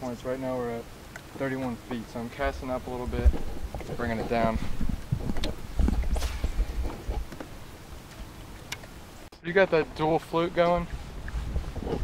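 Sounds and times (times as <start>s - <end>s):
wind rumbling on microphone: 1.6s - 9.3s, 9.9s - 12.0s.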